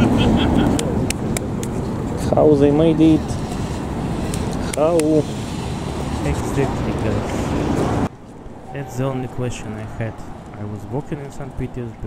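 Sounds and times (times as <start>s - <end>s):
city background rumble: 0.0s - 12.0s
man speaking: 2.2s - 3.4s, 4.6s - 5.3s, 6.2s - 7.6s, 8.7s - 12.0s.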